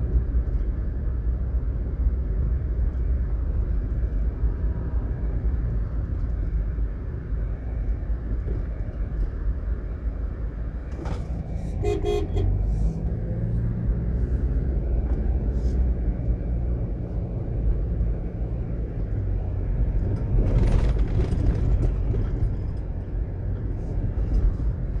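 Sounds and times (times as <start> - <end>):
car road and engine rumble: 0.0 - 25.0.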